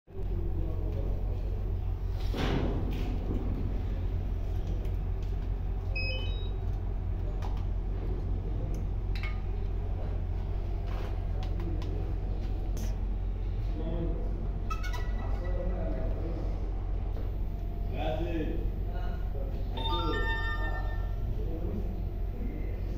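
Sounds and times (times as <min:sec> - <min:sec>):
electronic beeps: 0:19.8 - 0:21.2.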